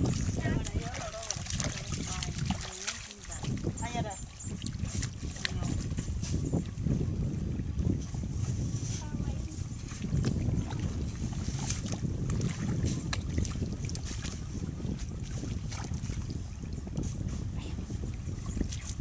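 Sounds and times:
water and mud splashing: 0:00.0 - 0:19.0
wind buffeting microphone: 0:00.0 - 0:19.0.

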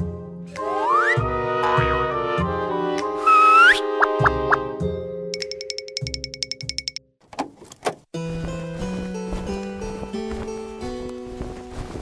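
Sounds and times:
children's music with steady beat: 0:03.9 - 0:07.0.

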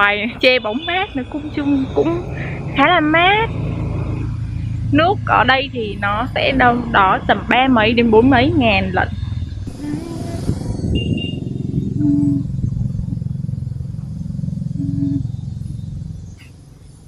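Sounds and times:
engine rumbling: 0:00.0 - 0:17.0.

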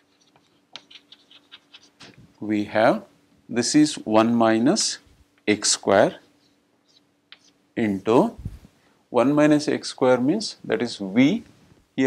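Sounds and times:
chalk scratching on chalkboard: 0:00.0 - 0:02.2, 0:06.1 - 0:07.6.

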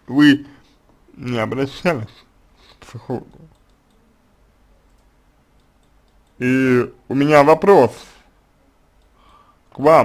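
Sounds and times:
faint clicks: 0:03.3 - 0:04.1, 0:04.8 - 0:06.4, 0:09.0 - 0:09.8.

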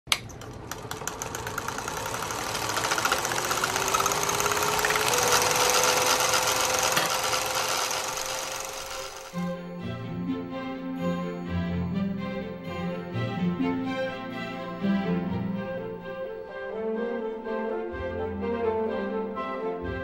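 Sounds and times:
film projector clatter: 0:00.1 - 0:09.4
projector motor whine: 0:00.1 - 0:09.4
music: 0:09.2 - 0:20.0.

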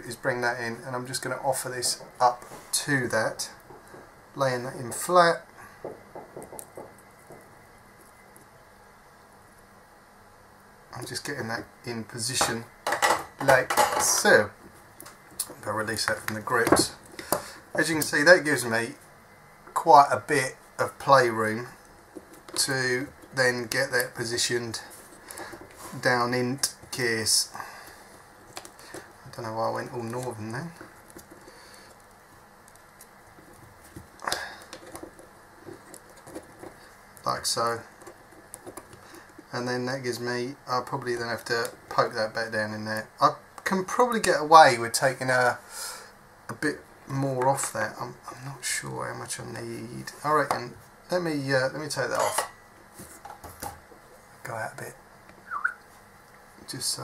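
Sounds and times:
small handling clicks and rubs: 0:28.0 - 0:39.5.

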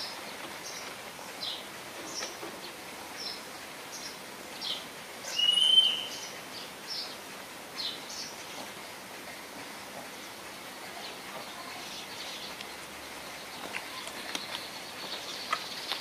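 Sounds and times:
small birds chirping: 0:00.0 - 0:09.0, 0:10.1 - 0:16.0
outdoor background hiss: 0:00.0 - 0:16.0
bird whistled note: 0:05.3 - 0:06.3.

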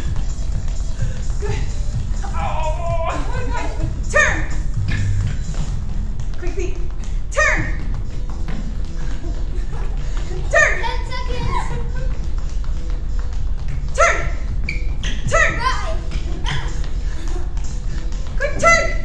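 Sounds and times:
background music: 0:00.0 - 0:19.0
rapid light footfalls: 0:00.0 - 0:19.0.

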